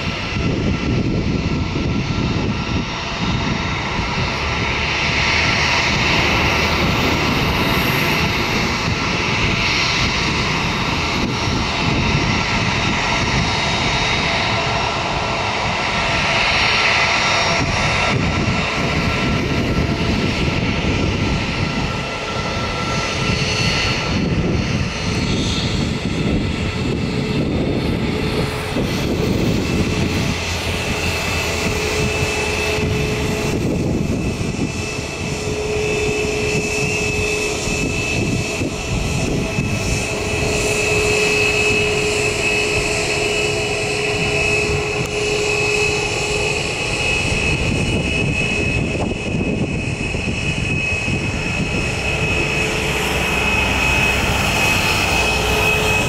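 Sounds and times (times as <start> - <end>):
jet engines whining: 0.0 - 56.0.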